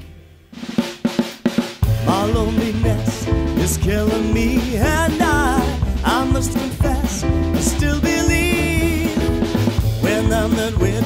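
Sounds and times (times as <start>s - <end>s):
drum kit fill: 0.0s - 11.0s
band playing: 1.8s - 11.0s.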